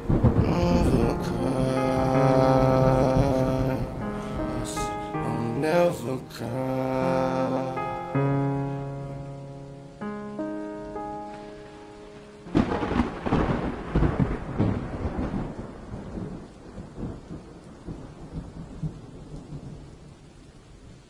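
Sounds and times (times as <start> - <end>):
song with held notes: 0.0 - 13.3
thunder rumbling: 0.0 - 20.9
rain hissing: 0.0 - 21.0.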